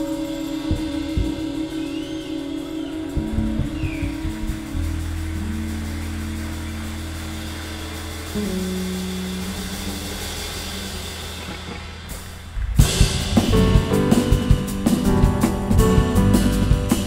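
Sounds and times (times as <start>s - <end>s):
live band long low notes: 0.0s - 17.0s.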